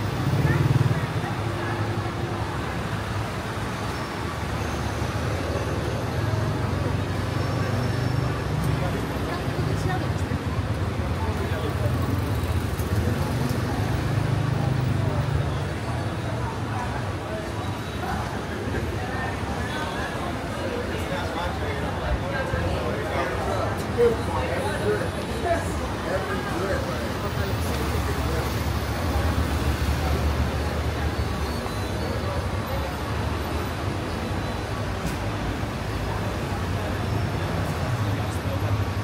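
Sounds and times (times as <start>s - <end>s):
passers-by talking: 0.0s - 39.0s
street traffic: 0.0s - 39.0s.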